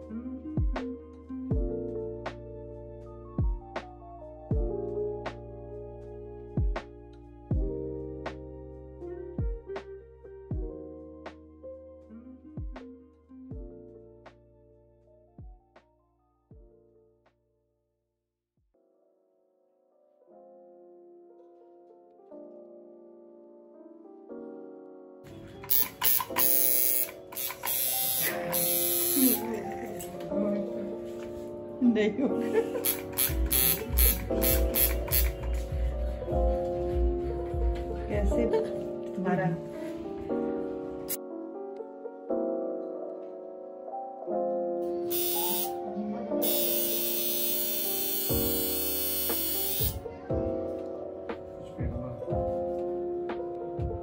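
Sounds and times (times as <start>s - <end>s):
background music: 0.0s - 17.4s, 18.8s - 54.0s
tattoo machine buzzing: 25.7s - 29.6s, 32.8s - 35.4s, 45.1s - 45.8s, 46.4s - 50.0s.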